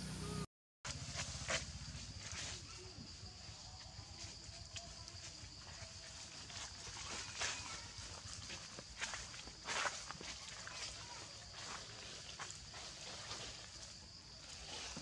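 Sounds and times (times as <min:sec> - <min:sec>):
dry leaves rustling and crunching: 0:06.5 - 0:15.0.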